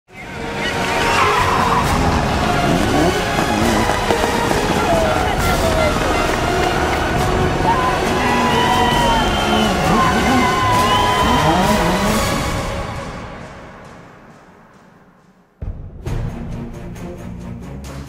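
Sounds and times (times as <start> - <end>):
rally car engines revving and passing: 0.3 - 12.8.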